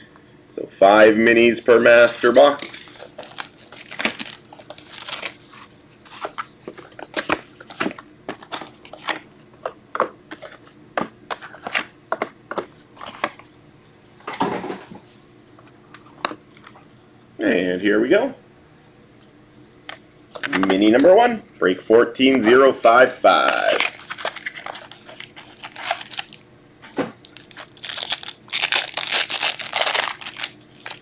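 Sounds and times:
plastic shrink wrap crinkling: 2.0s - 9.2s, 23.4s - 31.0s
cardboard rustling: 2.1s - 9.2s, 23.5s - 31.0s.

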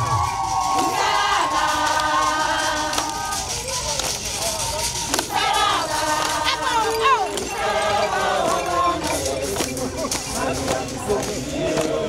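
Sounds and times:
crowd singing together: 0.0s - 12.0s.

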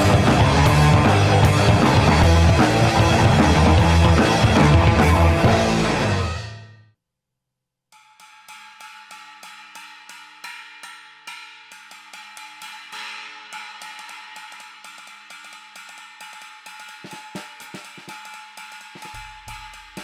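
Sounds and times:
china cymbal struck with drumstick: 8.0s - 20.0s.

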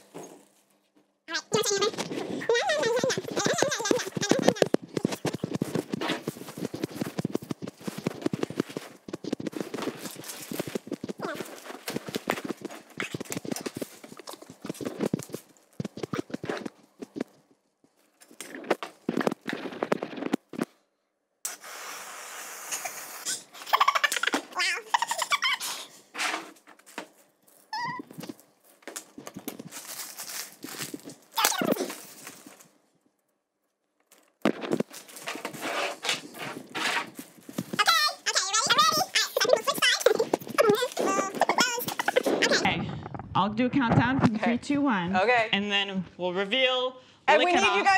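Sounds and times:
plastic bin bag rustling: 1.7s - 17.2s, 26.7s - 32.8s, 34.1s - 37.8s
whipped cream can spraying: 21.5s - 23.4s.

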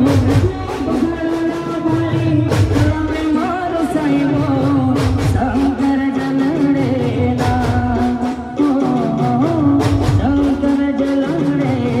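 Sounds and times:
band playing steady beat: 0.0s - 12.0s
man singing into a microphone: 0.0s - 12.0s.

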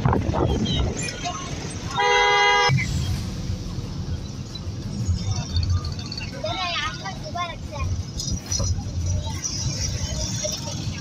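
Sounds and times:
street traffic rumble: 0.0s - 11.0s
vehicle horn: 1.9s - 2.8s.

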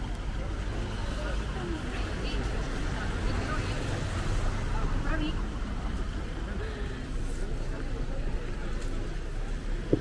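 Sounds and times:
indistinct voices of passersby: 0.0s - 10.0s.

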